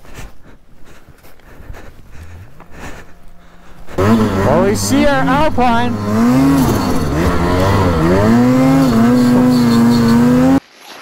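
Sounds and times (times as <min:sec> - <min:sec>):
hands scraping snow: 0:00.0 - 0:10.3.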